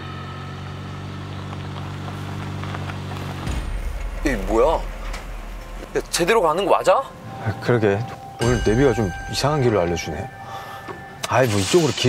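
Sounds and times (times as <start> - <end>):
car driving on rough road: 0.0 - 8.4.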